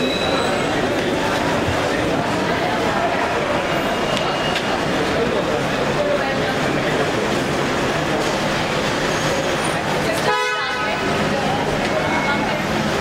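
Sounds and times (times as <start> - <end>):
crowd chatter: 0.0 - 13.0
car horn toot: 10.2 - 11.0.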